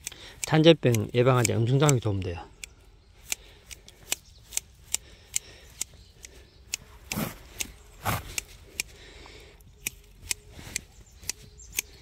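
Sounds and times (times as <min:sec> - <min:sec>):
hand shears snipping grass: 0:00.0 - 0:09.0, 0:09.8 - 0:12.0.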